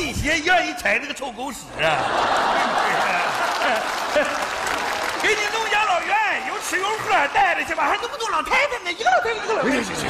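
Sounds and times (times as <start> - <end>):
audience laughing and applauding: 1.8 - 8.8
man talking: 5.2 - 10.0.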